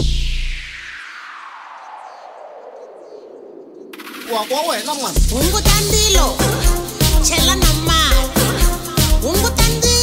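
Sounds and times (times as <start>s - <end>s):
house music: 4.2s - 10.0s.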